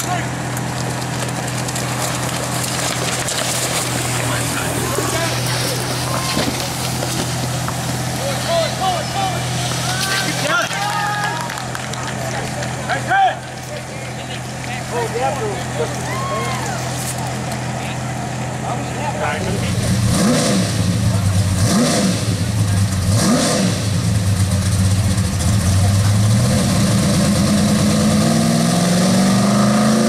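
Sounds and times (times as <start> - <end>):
low engine hum: 0.0 - 30.0
fire hose spraying water: 1.8 - 11.6
spectators shouting and cheering: 4.0 - 18.0.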